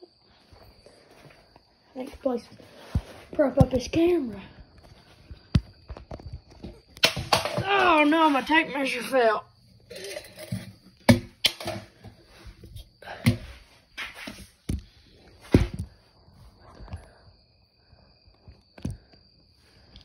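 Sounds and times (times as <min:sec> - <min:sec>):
sharp knocks and clatters: 0:05.6 - 0:08.4.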